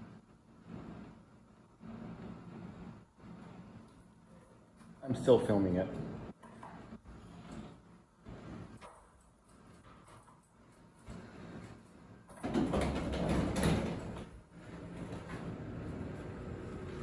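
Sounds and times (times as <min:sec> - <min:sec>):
elevator doors sliding: 0:09.6 - 0:17.0.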